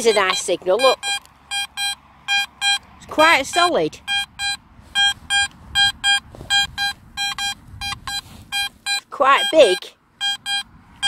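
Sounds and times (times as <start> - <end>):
metal detector beeps: 0.0 - 11.0.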